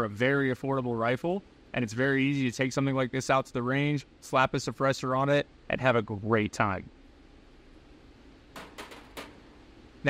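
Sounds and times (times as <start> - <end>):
rifle clicks and knocks on bench: 8.6 - 9.4.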